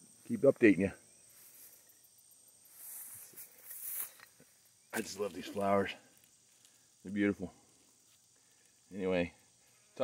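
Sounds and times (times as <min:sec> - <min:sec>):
insects chirring: 0:00.0 - 0:10.0
rustling through leaves: 0:02.6 - 0:04.3.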